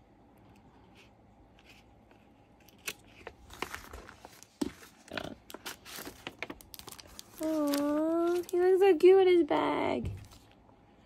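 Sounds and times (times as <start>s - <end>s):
paper crinkling and rustling: 1.6s - 9.0s.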